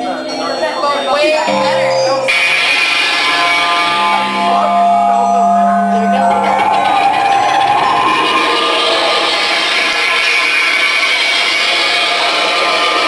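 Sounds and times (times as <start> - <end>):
faint sustained tones: 0.0 - 10.3
distorted rock band amplifiers: 1.5 - 13.0.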